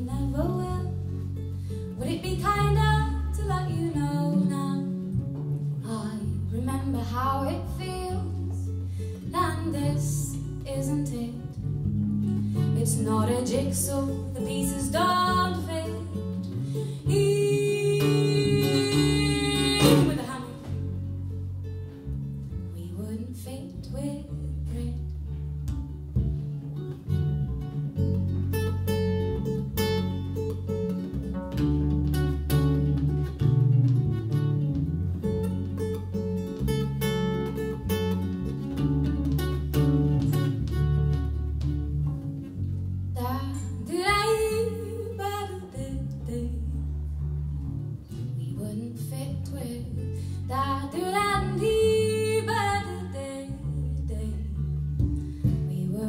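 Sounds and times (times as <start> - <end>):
woman singing: 0.0 - 1.2, 2.0 - 11.7, 12.6 - 21.0, 22.6 - 25.4, 43.1 - 47.2, 48.2 - 56.0
acoustic guitar playing: 0.0 - 56.0
bass line: 0.0 - 56.0.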